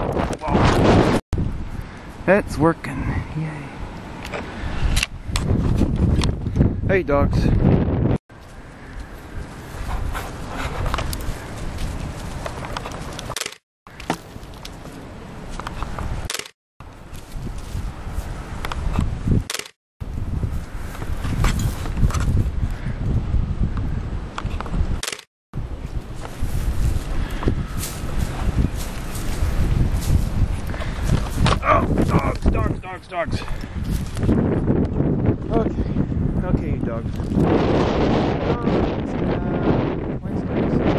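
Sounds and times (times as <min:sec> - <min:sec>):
wind on microphone: 0:00.0 - 0:02.2, 0:02.9 - 0:13.4, 0:15.2 - 0:40.9
bicycle rolling on dirt trail: 0:08.4 - 0:14.9.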